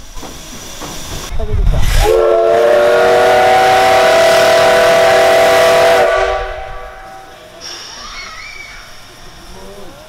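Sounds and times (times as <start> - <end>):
steam hiss: 0.0 - 10.0
steam locomotive whistle: 1.9 - 7.5.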